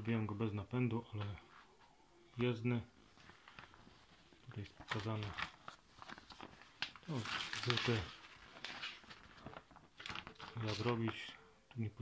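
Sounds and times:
paper sheet rustling: 3.0s - 11.4s
plastic bag crinkling: 3.2s - 11.3s.

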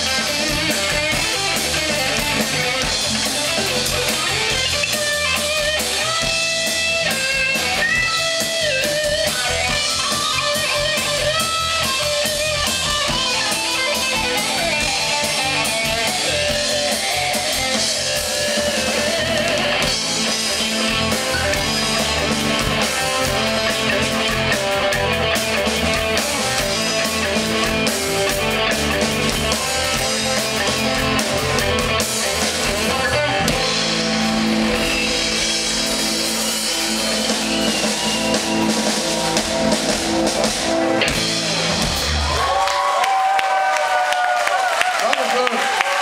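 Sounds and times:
keyboards: 0.0s - 42.8s
bass guitar: 0.0s - 44.3s
drum kit: 0.0s - 46.0s
electric guitar: 0.0s - 46.0s.

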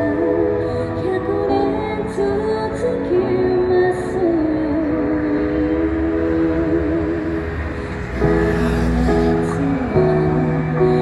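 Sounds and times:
woman singing with vibrato: 1.1s - 11.0s
low traffic rumble: 5.6s - 11.0s.

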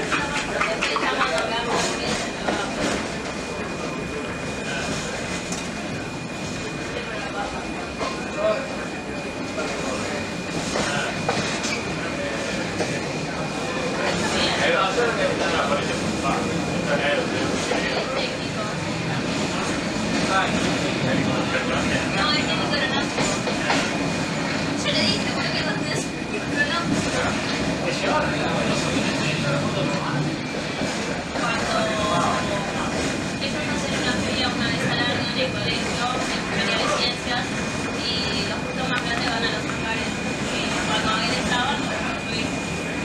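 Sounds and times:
train running on track: 0.0s - 43.0s.

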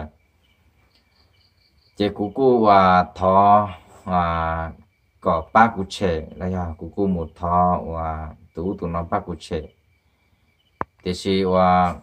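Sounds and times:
high-pitched insect-like chirps: 0.0s - 12.0s.

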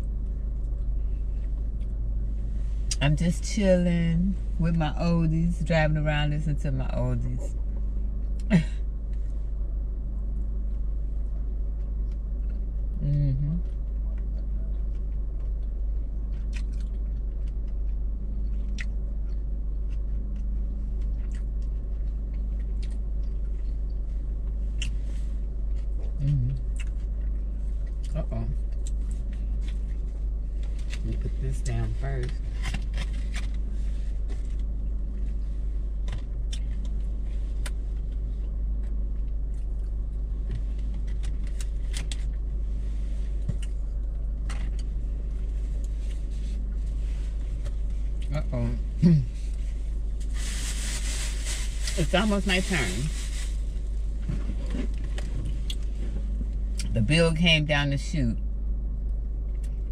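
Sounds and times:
low rumble in car cabin: 0.0s - 59.9s
person humming: 13.0s - 13.6s, 26.2s - 26.6s.

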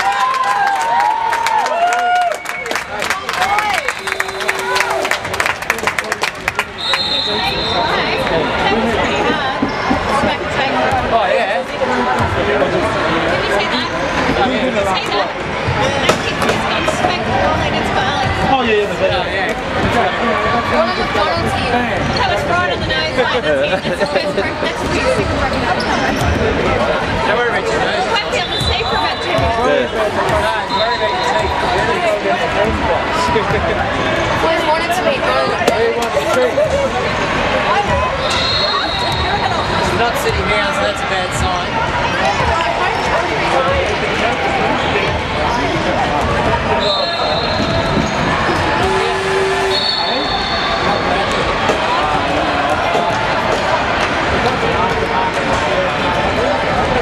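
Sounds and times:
many voices chattering: 0.0s - 57.0s
high-pitched shoe squeals: 46.8s - 51.2s.

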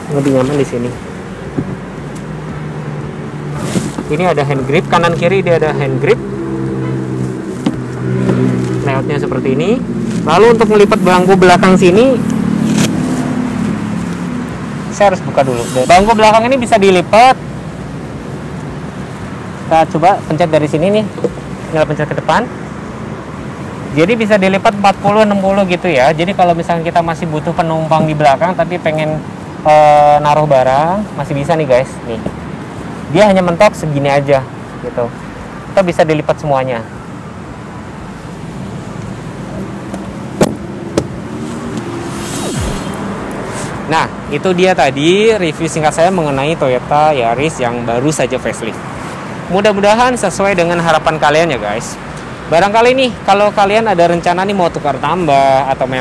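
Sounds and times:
vehicle engine humming: 0.0s - 52.5s
short falling sweep: 41.6s - 43.5s.

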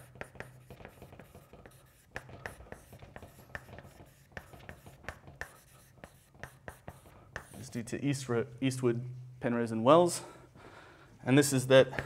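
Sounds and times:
chalk tapping and scratching on blackboard: 0.0s - 7.9s.

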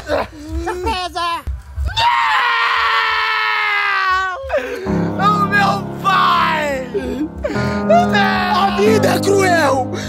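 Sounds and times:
boy screaming: 1.9s - 4.6s, 5.2s - 7.0s, 7.9s - 9.8s.

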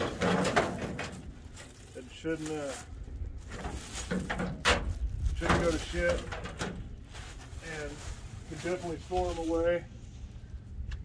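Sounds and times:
plastic wrapping crinkling: 1.2s - 9.7s.

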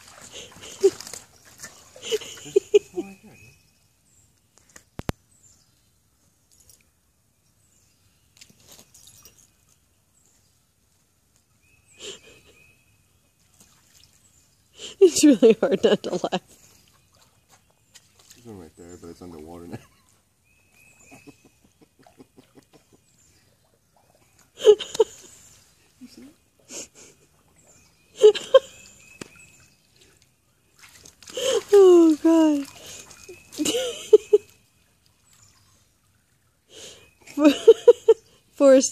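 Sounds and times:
dog splashing in water: 0.0s - 2.7s, 13.4s - 14.4s, 16.7s - 18.6s, 28.8s - 36.4s
woman laughing: 0.3s - 1.0s, 2.0s - 3.2s, 12.0s - 12.6s, 14.8s - 16.4s, 24.6s - 25.3s, 26.0s - 27.2s, 28.2s - 28.8s, 31.4s - 32.6s, 33.6s - 34.5s, 36.8s - 38.2s.

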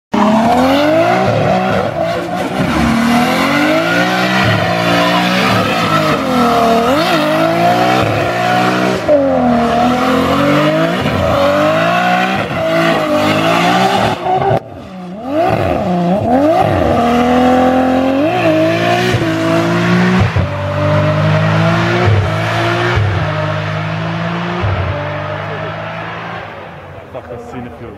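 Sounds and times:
car engine revving hard: 0.2s - 26.9s.

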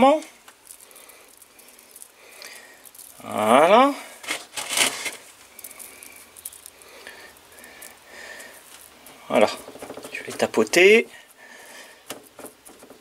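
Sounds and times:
compost rustling on plastic tray: 0.0s - 13.0s.

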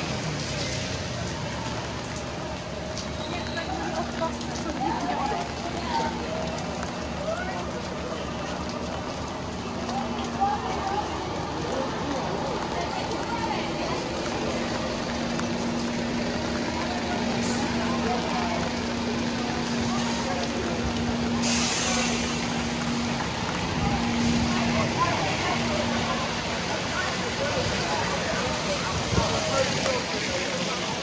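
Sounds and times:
bus engine humming: 0.0s - 31.0s
heavy rain on street: 0.0s - 31.0s
air brakes hiss: 21.4s - 22.4s.

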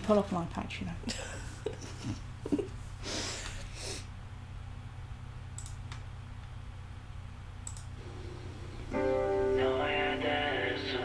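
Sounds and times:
low steady hum: 0.0s - 11.0s
music: 8.1s - 11.0s.

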